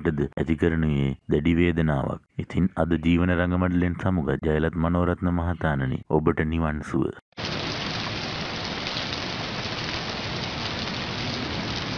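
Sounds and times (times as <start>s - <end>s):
person speaking: 0.0s - 7.2s
steady rain: 7.4s - 11.9s.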